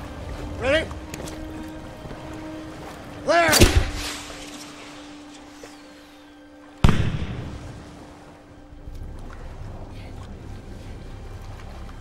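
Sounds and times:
ocean waves: 0.0s - 12.0s
wind: 0.0s - 12.0s.

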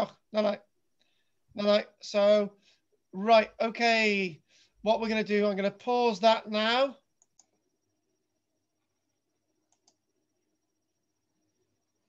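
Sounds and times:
faint high whine: 6.7s - 12.0s
computer mouse double-clicks: 9.7s - 10.0s.

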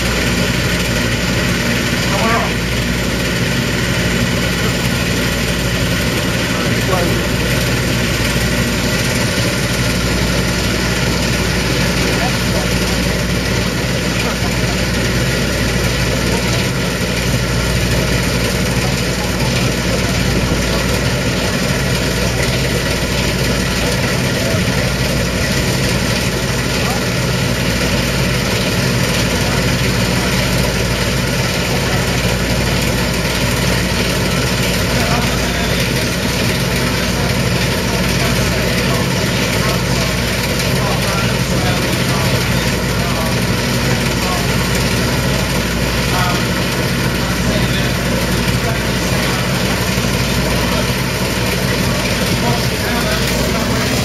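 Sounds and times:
combine harvester engine droning: 0.0s - 54.0s.

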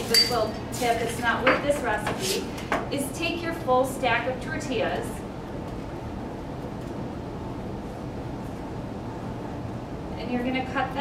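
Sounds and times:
low rumbling room noise: 0.0s - 11.0s.

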